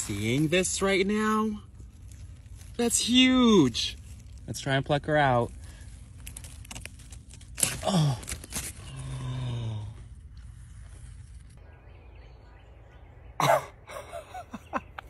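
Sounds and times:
hands rustling leaves: 0.0s - 11.8s.

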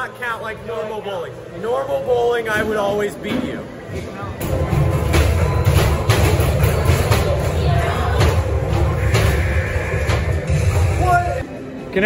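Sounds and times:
music: 4.4s - 12.0s.

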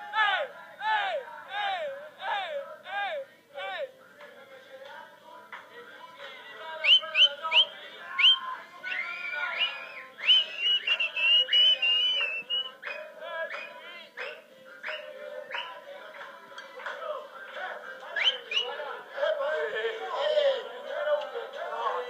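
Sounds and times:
crowd chanting: 0.0s - 22.0s
music: 0.0s - 22.0s
shrill whistling: 6.8s - 15.8s, 18.2s - 18.8s.

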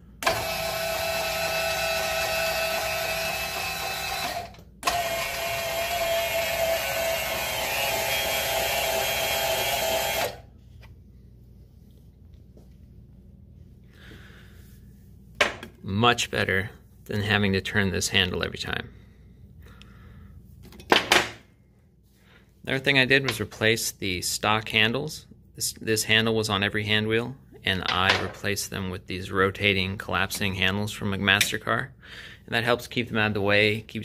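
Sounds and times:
electric motor whine: 0.2s - 10.5s.

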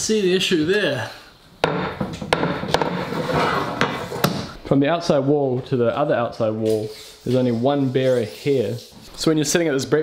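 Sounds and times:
straightedge knocking on floorboards: 1.6s - 4.5s.

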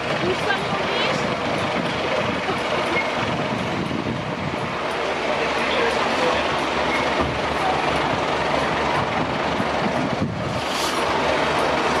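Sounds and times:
fire engines idling: 0.0s - 12.0s.

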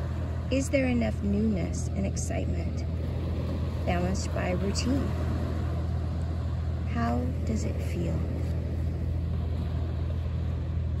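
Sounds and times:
low rumble of sea surf: 0.0s - 11.0s
small waves lapping: 0.0s - 11.0s.

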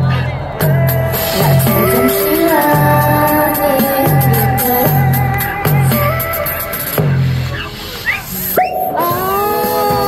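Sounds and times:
pop dance track through amplifier: 0.6s - 10.0s.

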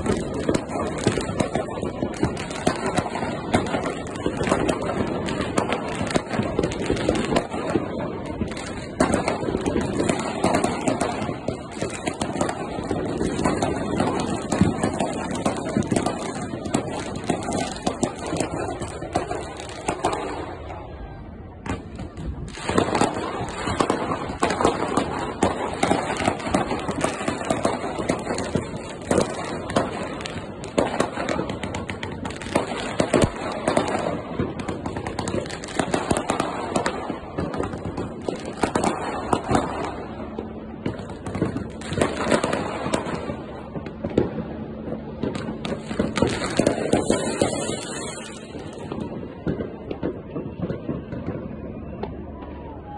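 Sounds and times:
fireworks bangs and crackles: 0.0s - 52.9s.

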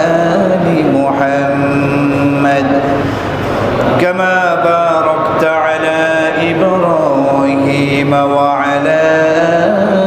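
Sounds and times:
man chanting: 0.0s - 3.1s, 4.0s - 10.0s.

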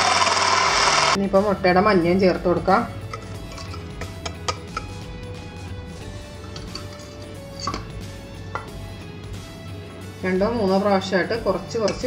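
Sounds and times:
faint background music: 1.1s - 12.0s
utensil scraping a steel bowl: 3.0s - 5.0s, 5.9s - 8.0s.

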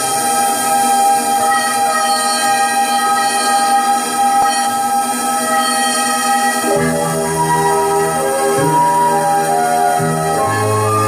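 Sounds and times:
electronic keyboard chord: 0.0s - 11.0s.

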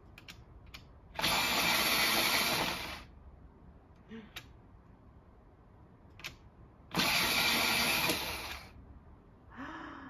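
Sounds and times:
electric pencil sharpener running: 1.2s - 3.1s, 6.9s - 8.8s.

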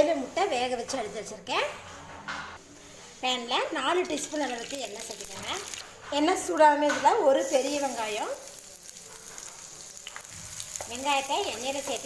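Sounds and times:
onions sizzling in hot oil: 4.3s - 5.8s, 7.3s - 12.0s.

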